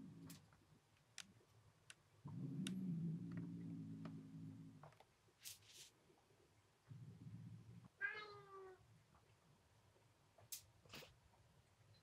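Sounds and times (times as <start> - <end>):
cat meowing: 8.0 - 8.8.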